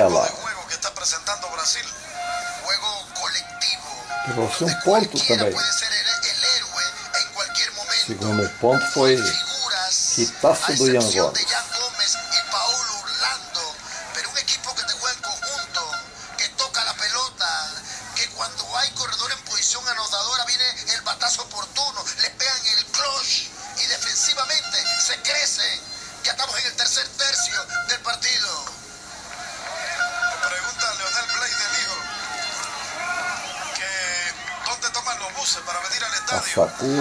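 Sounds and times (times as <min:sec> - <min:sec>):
background music on tv: 0:00.0 - 0:37.0
commentators talking on tv: 0:00.0 - 0:37.0.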